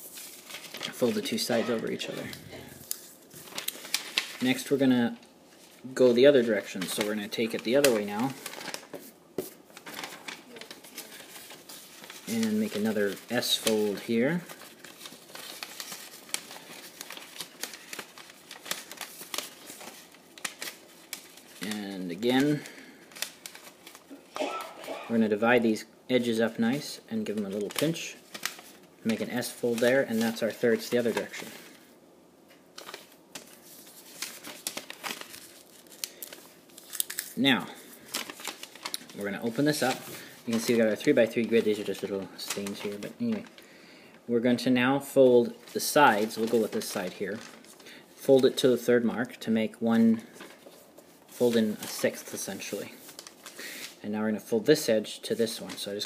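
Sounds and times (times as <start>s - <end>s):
paper rustling and crackling: 0.0s - 25.2s, 27.2s - 31.9s, 32.5s - 43.6s, 45.2s - 54.0s, 55.4s - 56.0s.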